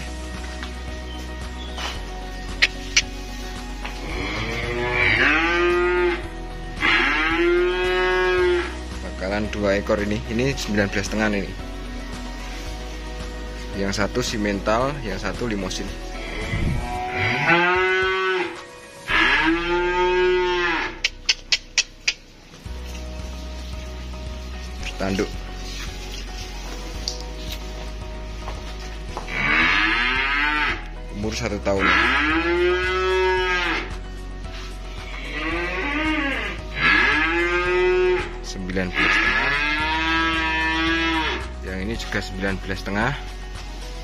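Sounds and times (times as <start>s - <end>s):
cattle mooing: 4.0s - 6.2s, 6.8s - 8.8s, 16.2s - 21.1s, 29.3s - 30.9s, 31.8s - 33.9s, 35.1s - 38.3s, 39.0s - 41.4s.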